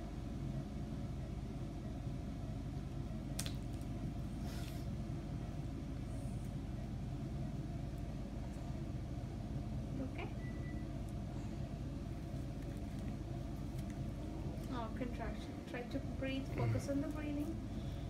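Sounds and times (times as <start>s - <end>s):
low room hum and rumble: 0.0s - 18.0s.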